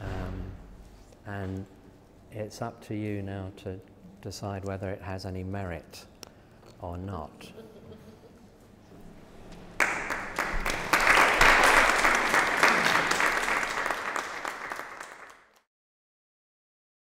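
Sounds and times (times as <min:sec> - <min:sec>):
audience applauding: 0:09.8 - 0:15.6.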